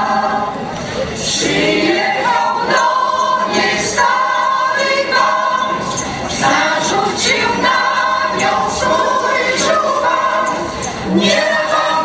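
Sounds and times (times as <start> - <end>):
mixed choir singing in harmony: 0.0 - 12.0.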